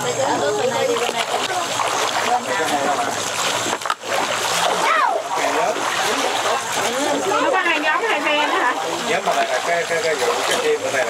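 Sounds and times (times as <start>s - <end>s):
people's voices: 0.0s - 3.8s, 4.6s - 11.0s
fish splashing at water surface: 0.0s - 11.0s.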